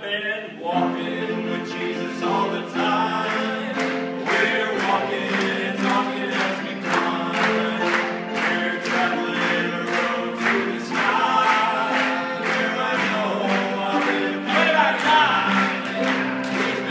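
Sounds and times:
men singing in harmony: 0.0 - 16.9.

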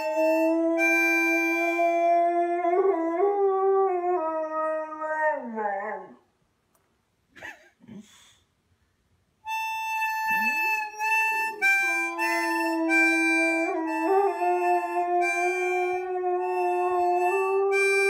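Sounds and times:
harmonica blowing: 0.0 - 2.0, 9.4 - 18.0
dog howling: 11.8 - 18.0.

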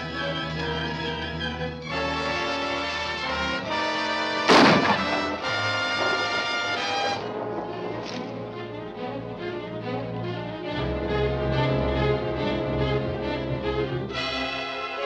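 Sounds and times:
dramatic orchestral music with brass: 0.0 - 15.0
loud bang: 4.5 - 8.6.

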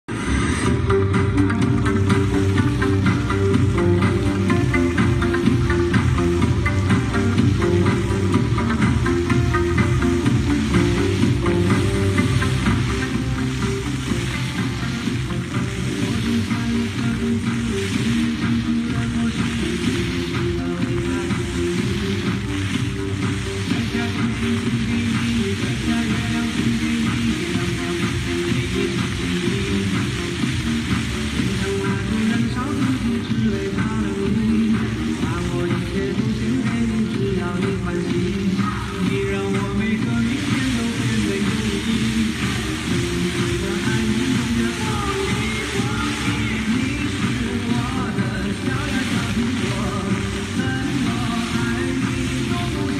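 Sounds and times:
background music sustained notes: 0.1 - 52.9
fountain water jets splashing: 0.1 - 52.9.

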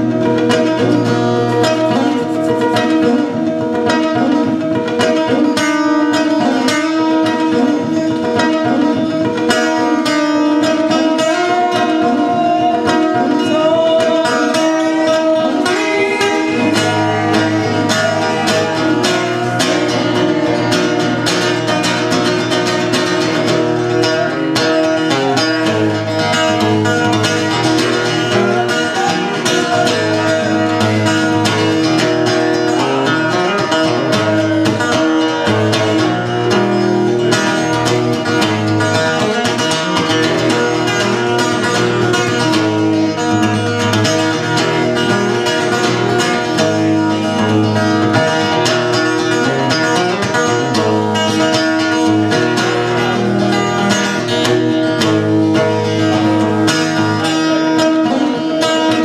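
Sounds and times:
acoustic guitar played fast: 0.0 - 59.0.

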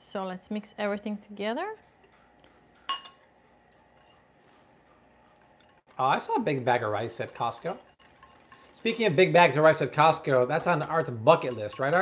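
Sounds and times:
whisk clinking against glass bowl: 3.9 - 4.3, 5.4 - 12.0.

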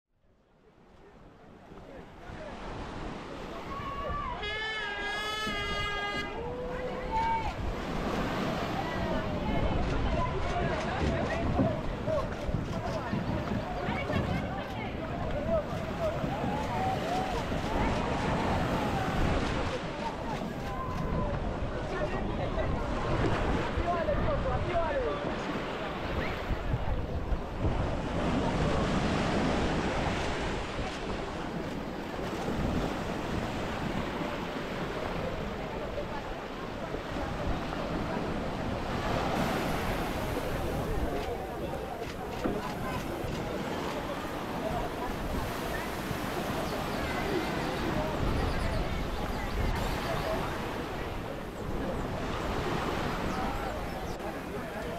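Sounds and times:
small waves washing on shore: 0.6 - 54.9
crowd talking and calling out: 0.9 - 54.9
wind buffeting microphone: 5.5 - 54.9.

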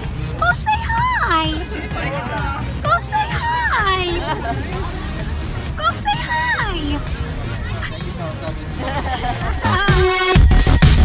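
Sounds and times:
crowd chatter: 0.0 - 11.0
low street rumble: 0.0 - 11.0
people's voices: 0.0 - 11.0.

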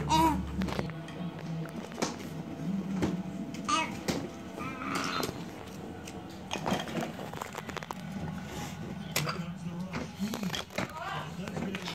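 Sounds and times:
low voices: 0.0 - 11.9.

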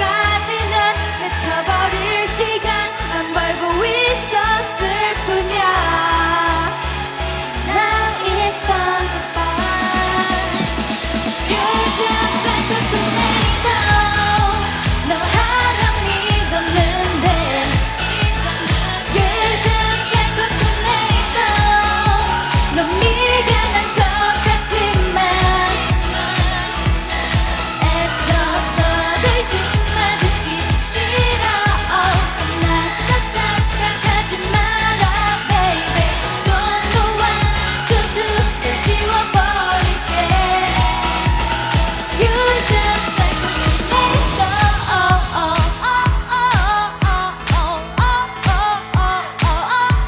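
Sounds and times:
pop dance song with female vocals: 0.0 - 50.0.

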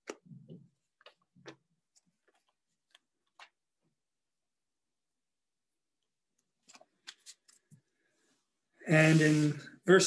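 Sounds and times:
book pages turning: 0.0 - 3.7, 6.4 - 7.9.

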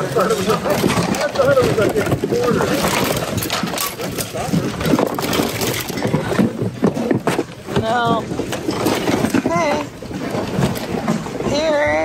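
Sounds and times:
clatter of items: 0.0 - 12.0.

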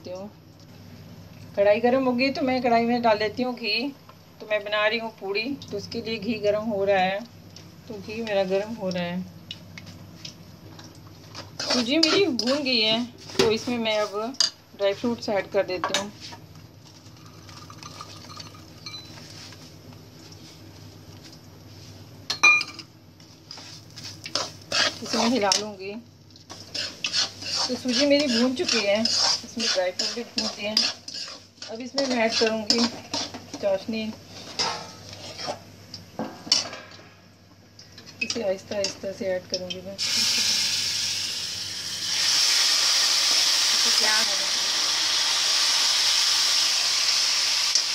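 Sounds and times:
steady low hum: 0.0 - 41.8
spoon stirring in a metal pan: 11.2 - 12.8, 24.0 - 25.8, 26.5 - 35.7
syrup hissing in hot pan: 40.0 - 47.9.

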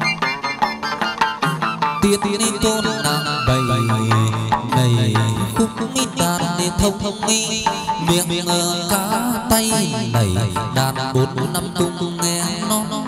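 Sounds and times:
plucked string melody: 0.0 - 13.0.

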